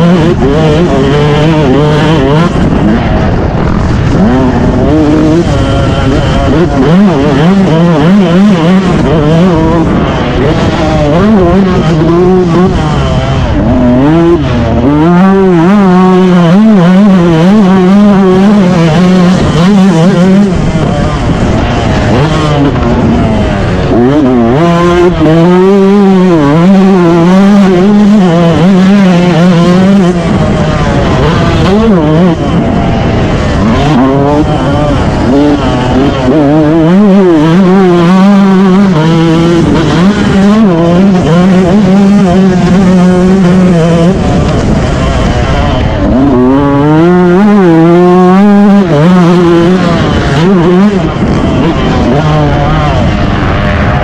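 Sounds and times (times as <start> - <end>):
wind rumble: 0.0 - 16.4, 17.1 - 54.0
motorbike engine revving: 0.0 - 54.0.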